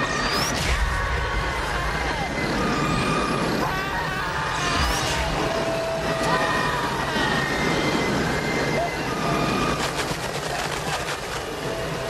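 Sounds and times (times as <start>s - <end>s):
dense steady noise: 0.0s - 12.0s.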